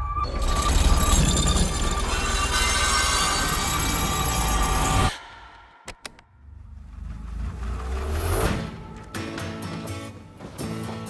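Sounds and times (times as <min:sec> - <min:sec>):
saw blades grinding metal: 0:00.9 - 0:05.1.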